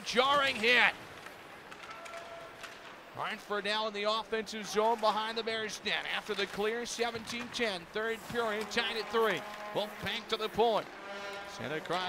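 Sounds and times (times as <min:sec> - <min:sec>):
hockey sticks and skates clicking: 0:00.0 - 0:12.0.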